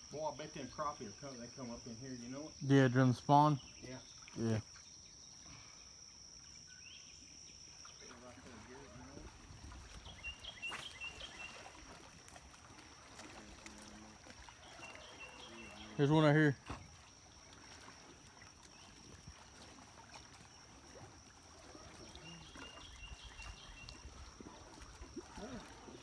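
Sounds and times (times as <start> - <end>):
high insect trill: 0.0 - 21.6.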